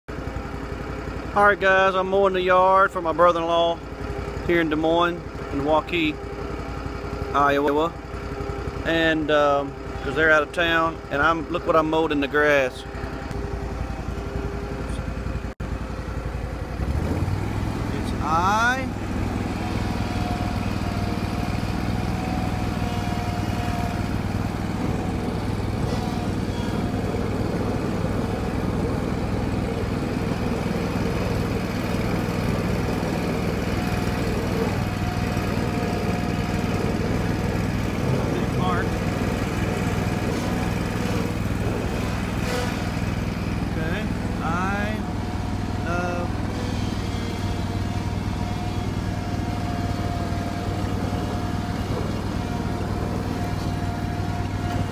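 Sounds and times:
lawn mower engine running: 0.1s - 54.9s.

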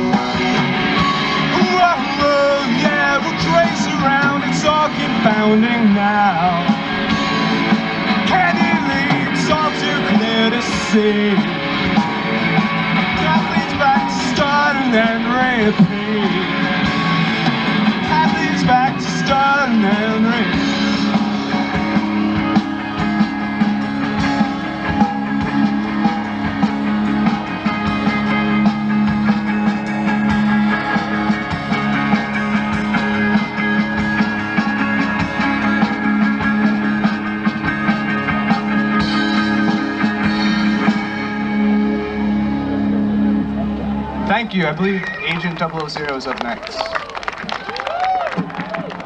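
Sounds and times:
rock band playing: 0.0s - 49.0s.

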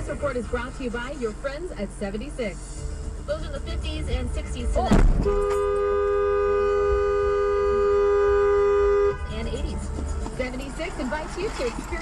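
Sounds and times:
car horn held down: 4.9s - 9.2s.

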